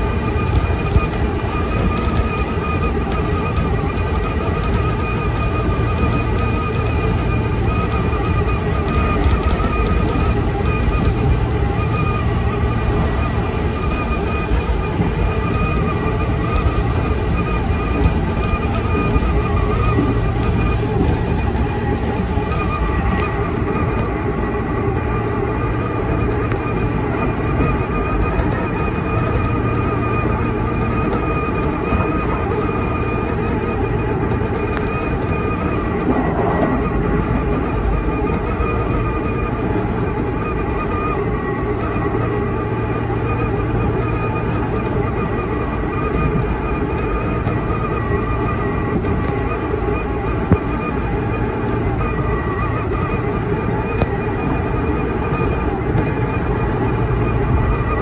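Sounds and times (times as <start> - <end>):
electric motor whine: 0.0 - 58.0
train wheels rumbling on rail: 0.0 - 58.0.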